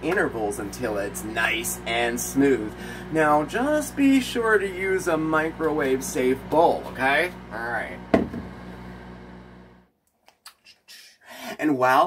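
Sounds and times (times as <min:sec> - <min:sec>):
low electrical hum: 0:00.0 - 0:09.9
sharp knock on microwave: 0:08.1 - 0:08.6.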